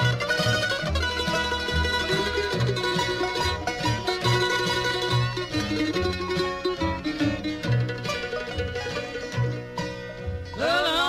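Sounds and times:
low bass notes: 0:00.0 - 0:10.6
bluegrass string band playing: 0:00.0 - 0:11.0
mandolin: 0:00.0 - 0:11.0.

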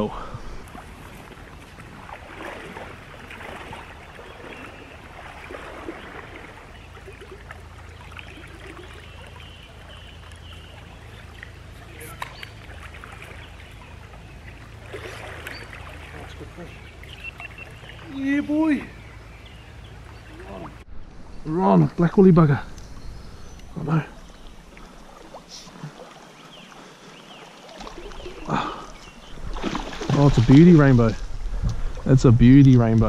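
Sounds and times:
small stream flowing: 0:00.0 - 0:33.0
low rumble: 0:18.9 - 0:25.2.

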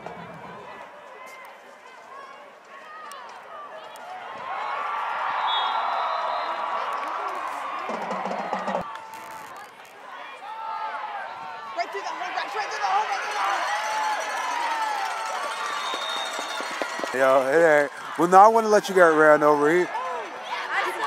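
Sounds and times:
crowd shouting and cheering: 0:00.0 - 0:21.0
referee whistle: 0:05.4 - 0:06.7, 0:15.5 - 0:17.2
music: 0:07.9 - 0:08.8.

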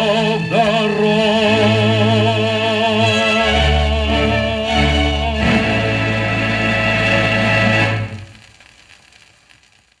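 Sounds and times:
held chord on a shellac record: 0:00.0 - 0:09.0
faint record hiss: 0:00.0 - 0:10.0.

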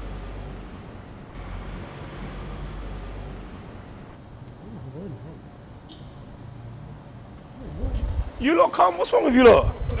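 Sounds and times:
road vehicle rumble: 0:00.0 - 0:10.0.

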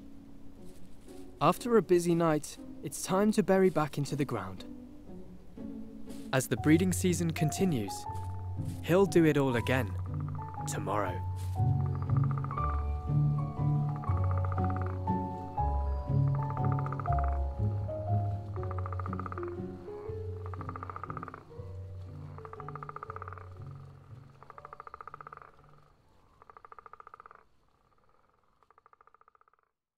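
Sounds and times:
soft music with bass line: 0:00.0 - 0:24.9
frog purring croak: 0:09.5 - 0:17.9, 0:18.5 - 0:29.9.

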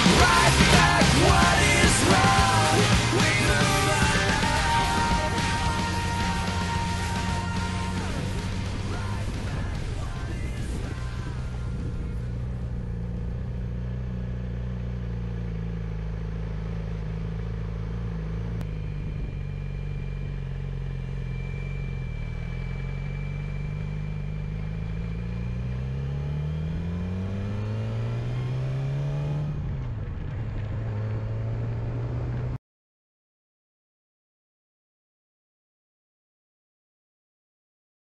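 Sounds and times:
vehicle engine accelerating: 0:00.0 - 0:32.6.

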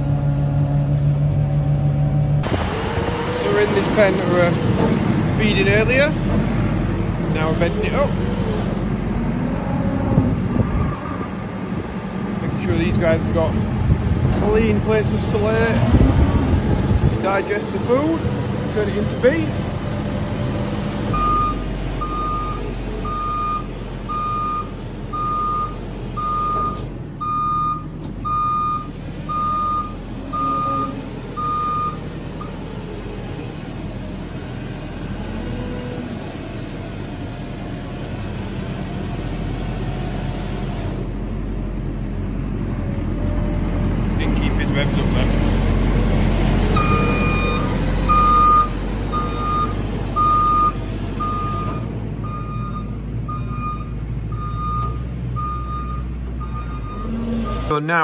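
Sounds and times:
engine running: 0:00.0 - 0:58.0
reversing alarm beeping: 0:21.2 - 0:32.6, 0:46.8 - 0:57.7.

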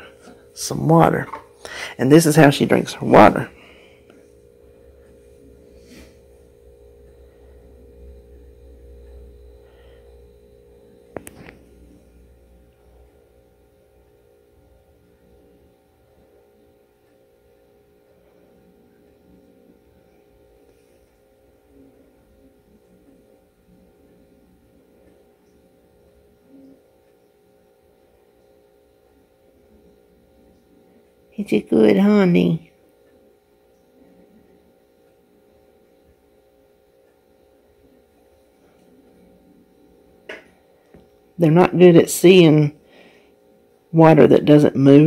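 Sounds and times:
quiet electrical hum: 0:00.0 - 0:45.0.

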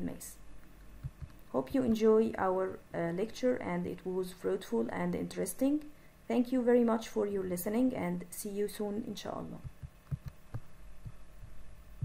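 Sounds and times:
steady low hum: 0:00.0 - 0:12.0
dull low thumps: 0:01.0 - 0:01.4, 0:09.6 - 0:12.0.

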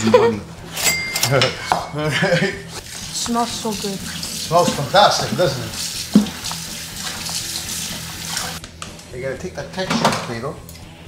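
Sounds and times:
kitchen tap running into sink: 0:02.8 - 0:08.6
dull knock: 0:06.1 - 0:06.4.

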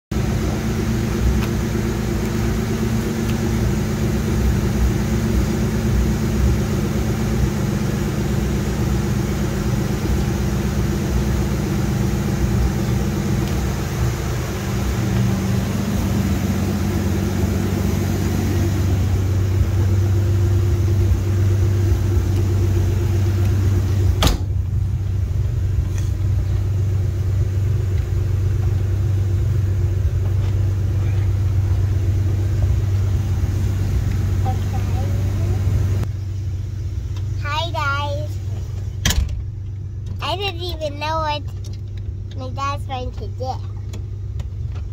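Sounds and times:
car engine idling: 0:00.1 - 0:44.9.

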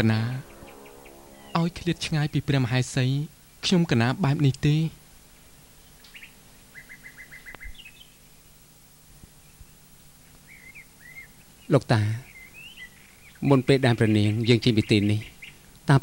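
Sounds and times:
small birds chirping: 0:04.3 - 0:16.0.

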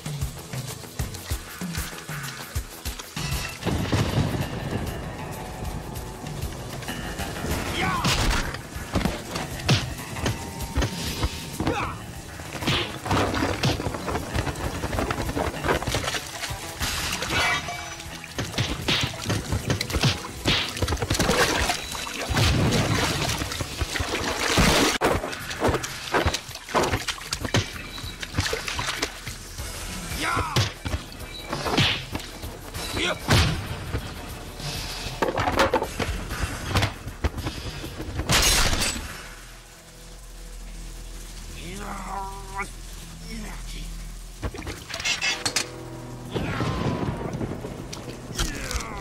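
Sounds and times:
action film music: 0:00.0 - 0:49.0
water splashing: 0:07.8 - 0:29.8.

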